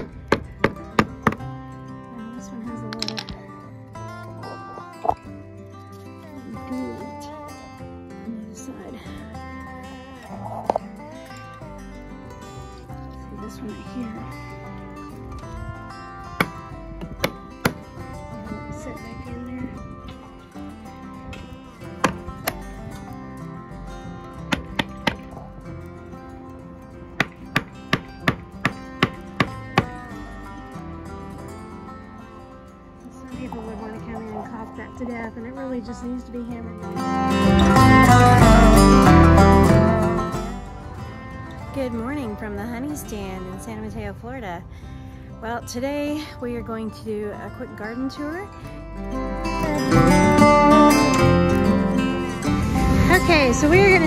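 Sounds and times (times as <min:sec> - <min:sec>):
background music: 0:00.0 - 0:54.0
hammer striking wood: 0:24.5 - 0:25.3, 0:27.2 - 0:29.9.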